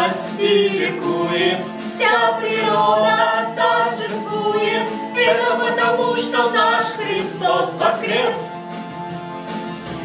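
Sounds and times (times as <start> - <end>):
people singing unaccompanied: 0.0 - 8.6.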